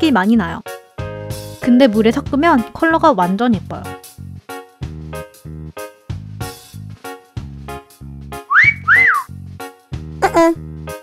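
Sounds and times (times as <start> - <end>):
bouncy background music: 0.0 - 11.0
wolf whistle: 8.5 - 9.3.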